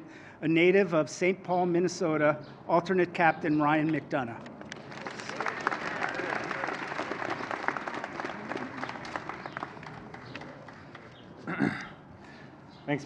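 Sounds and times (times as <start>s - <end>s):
crowd applause: 4.7s - 11.2s.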